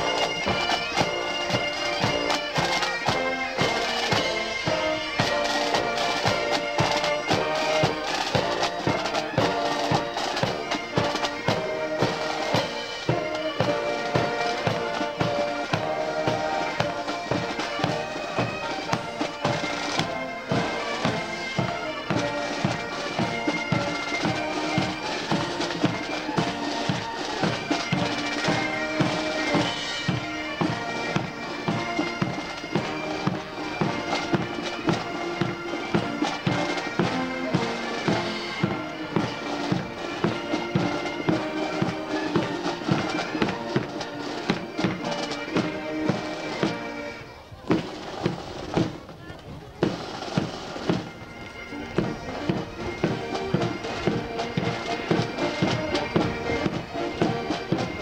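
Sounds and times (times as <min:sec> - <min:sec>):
marching drumbeat: 0:00.0 - 0:47.0, 0:47.6 - 0:58.0
bagpipes playing a melody: 0:00.0 - 0:58.0.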